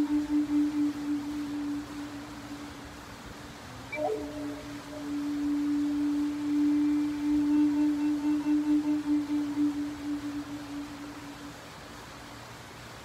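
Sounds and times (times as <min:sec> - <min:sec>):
flute long low note: 0:00.0 - 0:12.3.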